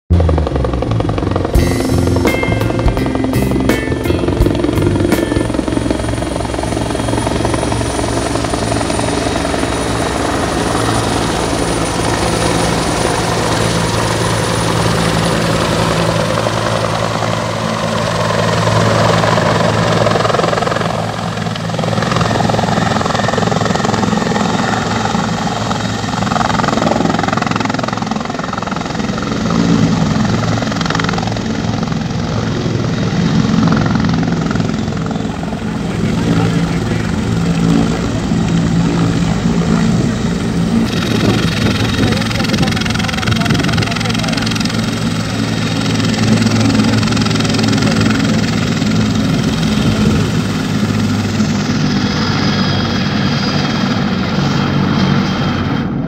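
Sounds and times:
helicopter rotor and engine: 0:00.1 - 0:56.0.

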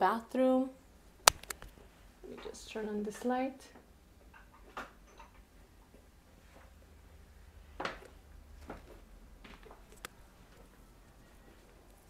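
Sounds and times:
short light clicks: 0:01.3 - 0:01.7.

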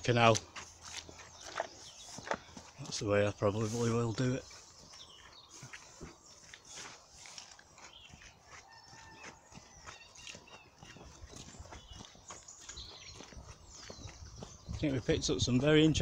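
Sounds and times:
faint songbirds chirping: 0:00.0 - 0:16.0
footsteps squelching in mud: 0:00.0 - 0:16.0.

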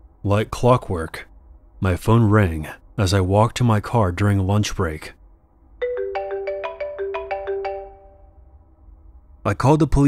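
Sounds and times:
mobile phone ringtone: 0:05.8 - 0:08.4.

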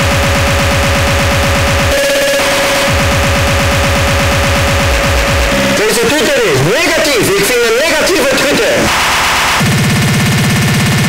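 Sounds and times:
fast distorted kick drums: 0:00.0 - 0:11.0
high-pitched drone: 0:00.0 - 0:11.0.

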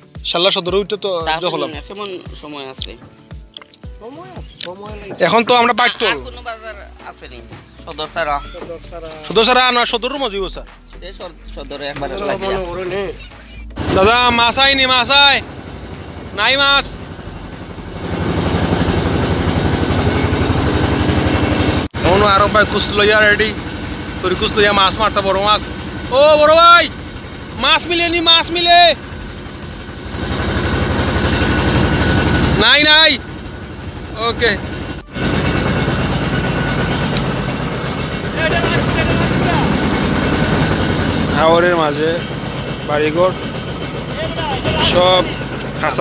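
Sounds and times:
boat engine running: 0:01.2 - 0:46.0.

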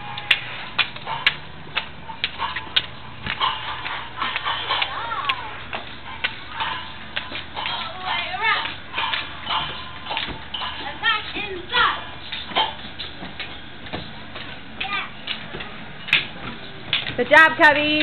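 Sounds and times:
young children chattering: 0:04.6 - 0:05.8.

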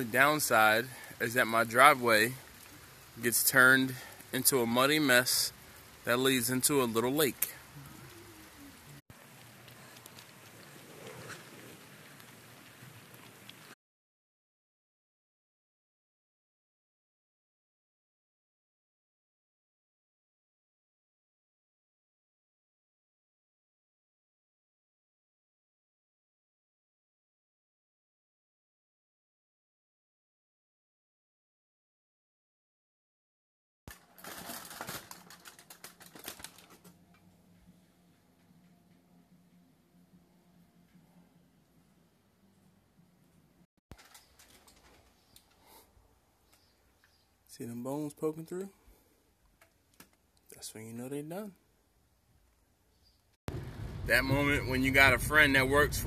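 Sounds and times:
faint rain on muddy ground: 0:00.0 - 0:13.8, 0:33.9 - 0:42.6, 0:43.2 - 0:50.6, 0:51.5 - 0:56.0
aluminum foil crinkling: 0:33.9 - 0:37.2, 0:43.9 - 0:45.7.

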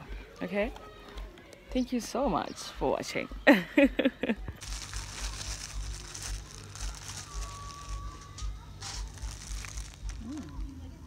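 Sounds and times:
plastic bag crinkling: 0:04.6 - 0:11.0.

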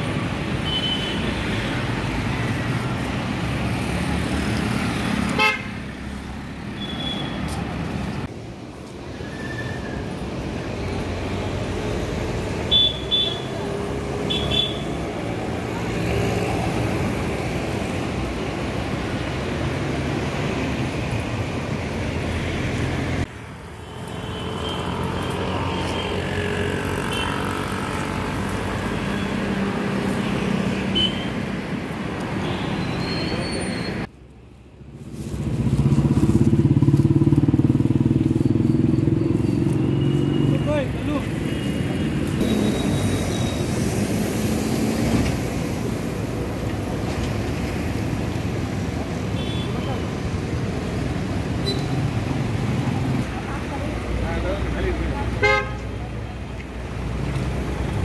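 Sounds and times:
traffic passing: 0:00.0 - 0:58.0.

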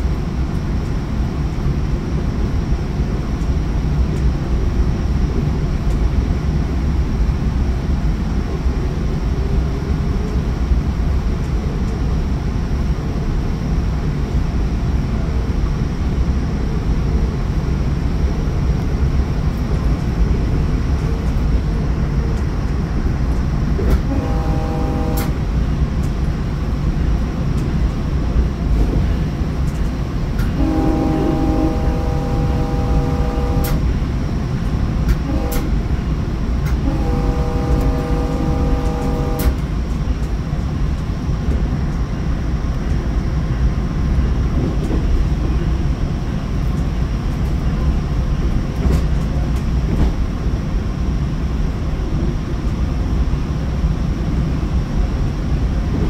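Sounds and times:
train running rumble: 0:00.0 - 0:56.0
train horn blasts: 0:23.9 - 0:25.6, 0:30.4 - 0:34.1, 0:35.1 - 0:39.8.

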